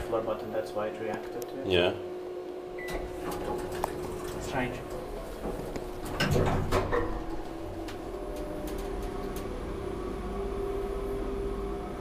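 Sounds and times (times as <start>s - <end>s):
elevator hum: 0.0s - 12.0s.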